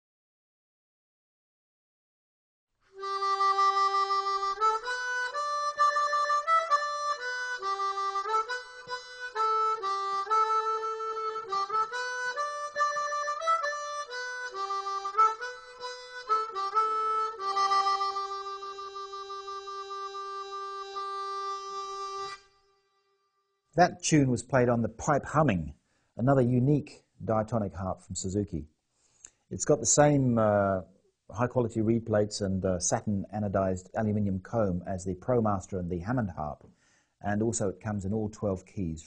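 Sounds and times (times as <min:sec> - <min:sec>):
harmonica playing a tune: 0:03.0 - 0:23.3.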